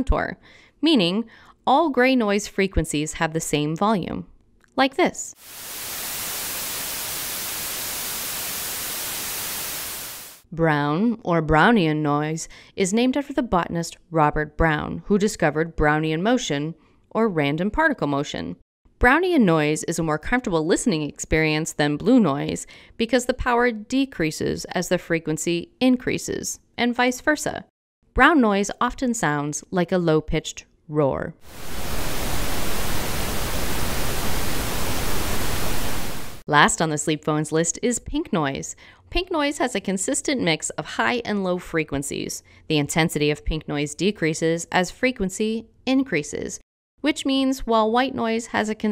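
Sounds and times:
steady even hiss: 5.4s - 10.4s, 31.4s - 36.5s.

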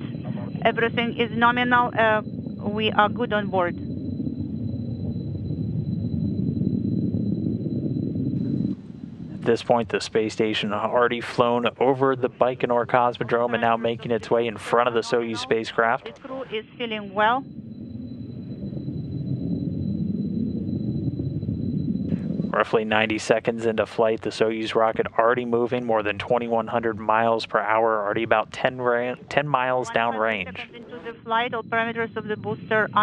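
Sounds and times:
rocket engine rumble: 0.0s - 33.0s.

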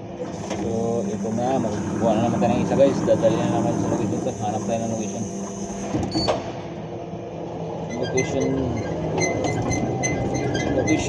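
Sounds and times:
lift truck motor hum: 0.0s - 11.0s.

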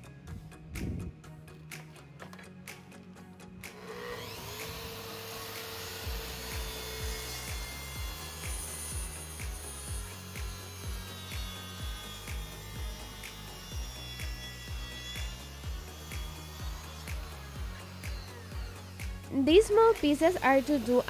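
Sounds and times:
music with steady beat: 0.0s - 21.0s
circular saw cutting wood: 3.6s - 21.0s
dust extractor running: 3.7s - 21.0s.

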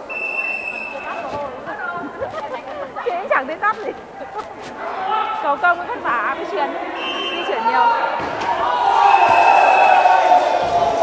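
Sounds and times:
referee's whistle: 0.0s - 1.4s, 7.0s - 7.7s, 8.9s - 10.2s
players and spectators talking: 0.0s - 11.0s.

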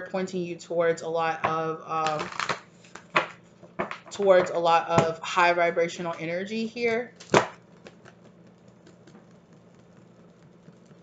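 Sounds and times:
cards slapping: 2.0s - 4.1s, 7.2s - 11.0s.

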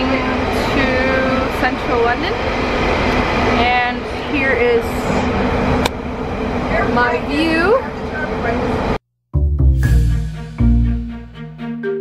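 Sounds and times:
train rumble inside carriage: 0.0s - 9.0s.

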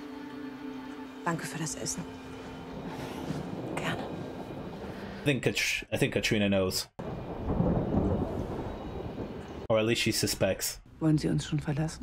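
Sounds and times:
rain: 2.4s - 5.2s, 7.0s - 9.7s
thunder rumbling: 2.6s - 5.2s, 7.0s - 9.7s.

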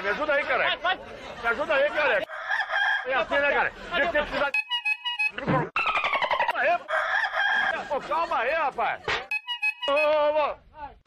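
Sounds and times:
rooster crowing: 2.3s - 3.2s, 6.0s - 7.9s.

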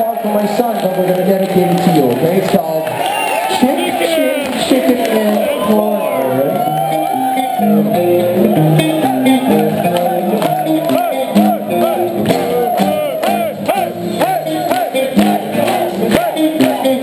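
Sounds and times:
thrash metal band playing live: 6.7s - 17.0s.

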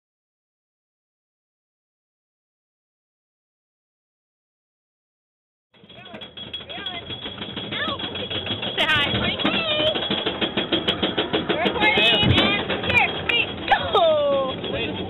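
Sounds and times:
roller coaster chain lift clacking: 5.8s - 15.0s.

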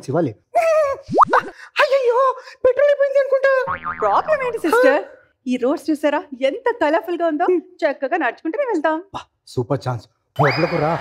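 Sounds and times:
cartoon boing sound effects: 3.7s - 4.7s.

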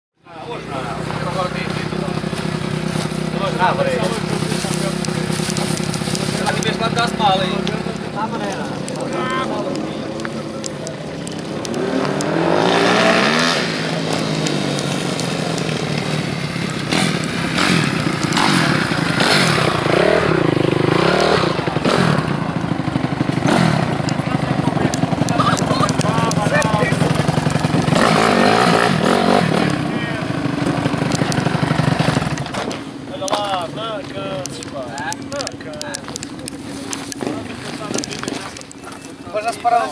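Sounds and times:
people talking: 0.2s - 17.0s, 23.8s - 27.4s, 28.0s - 30.5s, 33.0s - 39.9s
motorcycle engines running: 0.2s - 39.9s.

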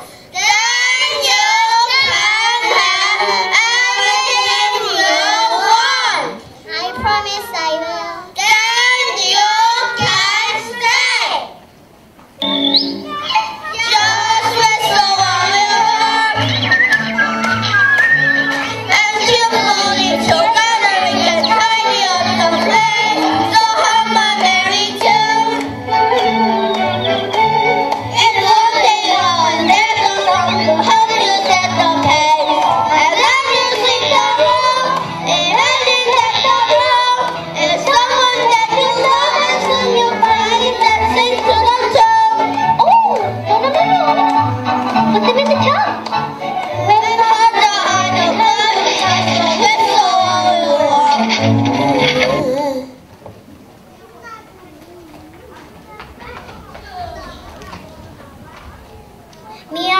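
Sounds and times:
music: 0.0s - 6.4s, 12.4s - 53.0s
young children singing: 0.0s - 11.6s, 12.4s - 53.8s.

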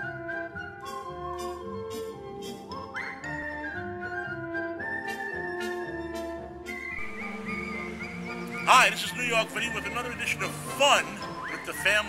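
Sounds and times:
light orchestral music with flute: 0.0s - 12.0s.

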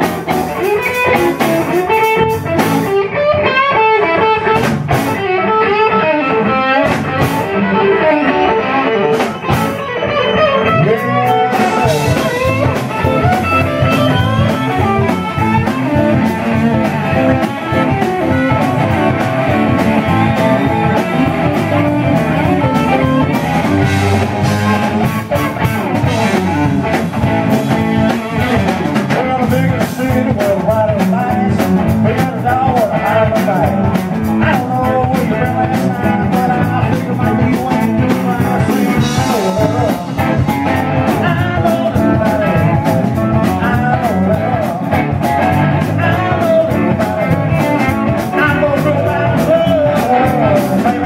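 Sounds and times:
bass guitar: 0.0s - 51.0s
drum kit: 0.0s - 51.0s
electric guitar: 0.0s - 51.0s.

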